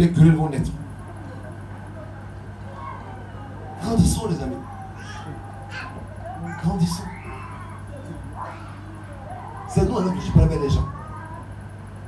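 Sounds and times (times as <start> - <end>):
man speaking through a microphone: 0.0 - 0.9, 3.8 - 5.1, 6.3 - 7.4, 9.4 - 11.1
steady electrical hum: 0.0 - 12.0.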